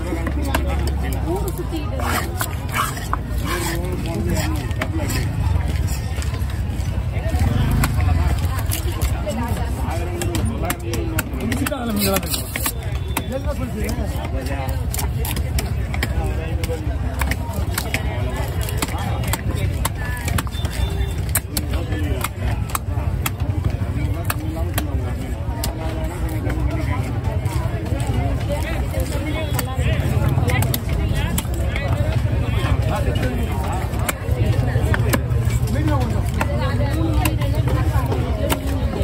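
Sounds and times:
people talking: 0.0s - 39.0s
knife chopping fish on wooden block: 10.1s - 13.3s.

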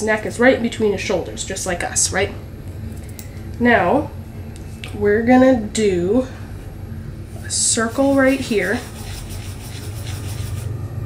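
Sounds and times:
steady low rumble: 0.0s - 11.0s
pencil scratching on paper: 7.4s - 10.7s.

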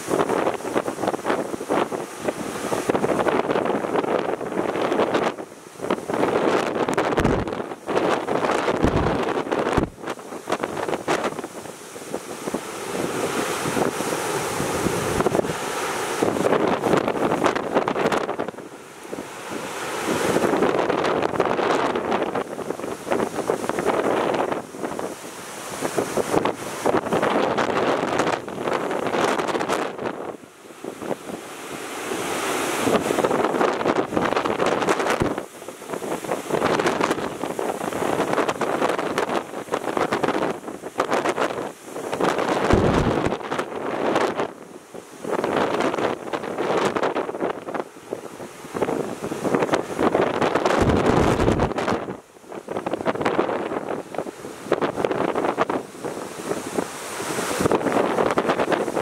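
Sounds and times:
heavy surf breaking: 0.0s - 59.0s
strong wind buffeting microphone: 0.0s - 59.0s.

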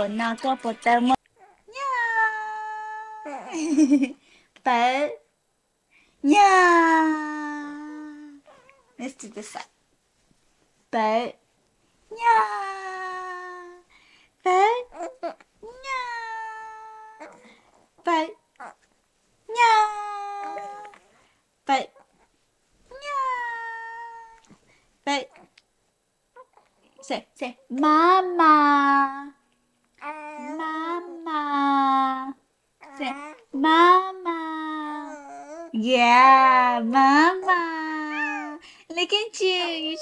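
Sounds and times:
baby high-pitched vocalisation: 14.8s - 17.7s, 19.6s - 21.1s, 22.9s - 24.6s, 30.0s - 31.3s, 32.8s - 33.6s, 34.6s - 35.8s, 38.0s - 38.6s.

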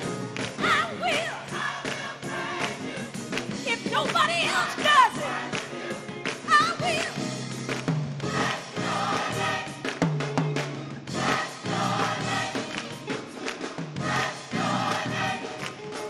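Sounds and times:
gospel choir singing: 0.0s - 7.3s, 8.2s - 10.0s, 11.0s - 16.0s.

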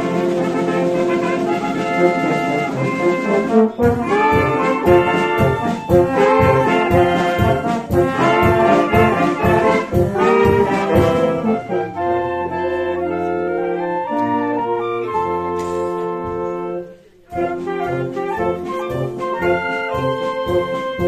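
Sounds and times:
drum kit steady beat: 0.0s - 11.6s, 17.4s - 21.0s
wind band playing chords: 0.0s - 21.0s.

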